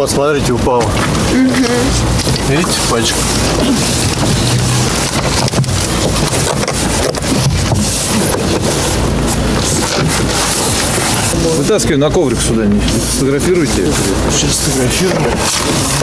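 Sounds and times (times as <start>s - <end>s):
faint voices: 0.0s - 6.4s, 10.8s - 16.0s
loud rushing noise on microphone: 0.0s - 16.0s.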